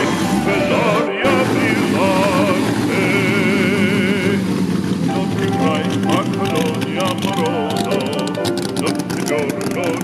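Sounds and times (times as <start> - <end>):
car engine idling: 0.0 - 10.0
operatic singing with vibrato: 0.0 - 10.0.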